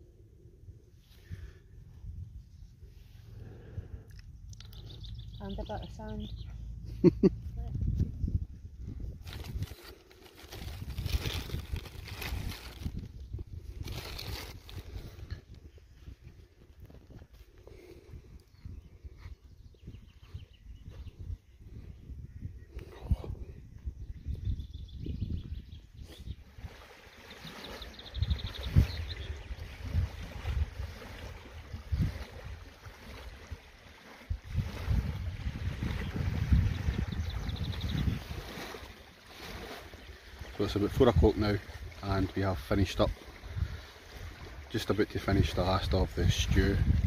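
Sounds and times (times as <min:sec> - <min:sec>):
wind buffeting microphone: 0:00.7 - 0:47.0.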